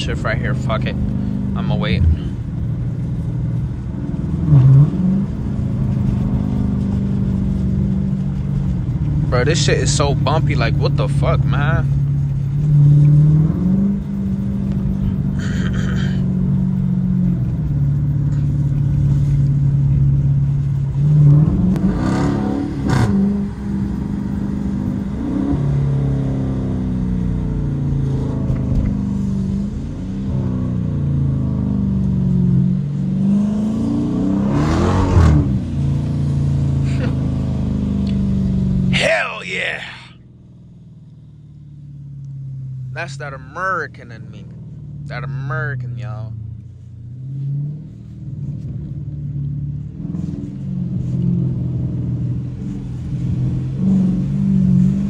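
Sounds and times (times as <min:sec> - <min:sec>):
car engine from inside cabin: 0:00.0 - 0:55.0.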